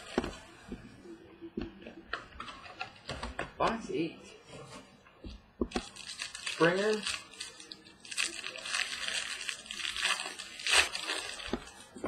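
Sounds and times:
plastic packaging crinkling: 5.8 - 12.0.

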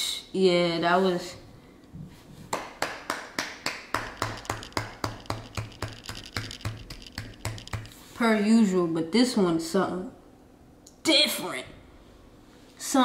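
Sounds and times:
person clapping hands: 2.5 - 7.9.

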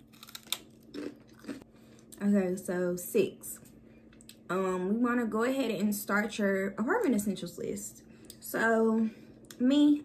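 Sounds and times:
person chewing crunchy food: 0.0 - 2.2.

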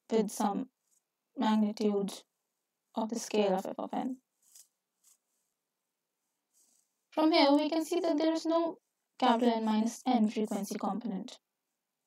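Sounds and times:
woman speaking: 0.1 - 0.7, 1.4 - 2.2, 3.0 - 4.2, 7.2 - 11.4
faint soft sounds: 2.1 - 9.9.

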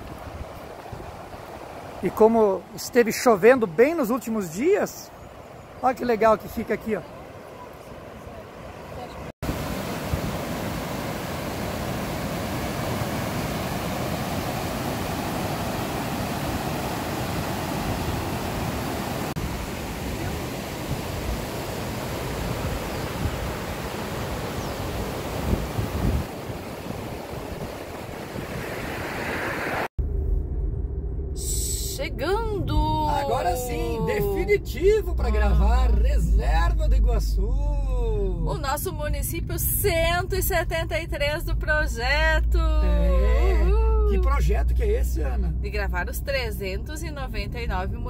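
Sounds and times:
river rapids roaring: 6.5 - 29.9.

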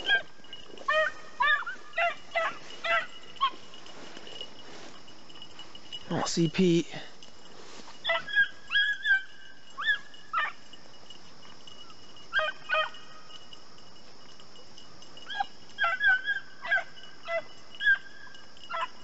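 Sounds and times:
dogs barking: 0.0 - 5.7, 8.0 - 10.8, 11.8 - 13.4, 15.2 - 19.0.

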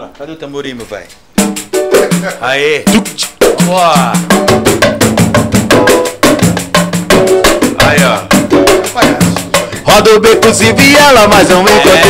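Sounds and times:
samba hand drums and percussion: 1.4 - 12.0.

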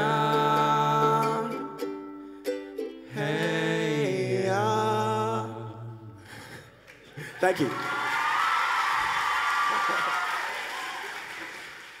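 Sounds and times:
audience applauding and cheering: 6.9 - 12.0
high-pitched shrieks and whoops: 7.7 - 11.3.

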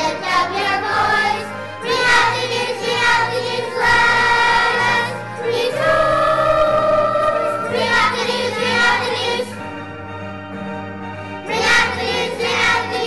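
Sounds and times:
children's choir singing: 0.0 - 9.8, 11.4 - 13.0
low musical accompaniment: 0.0 - 13.0.

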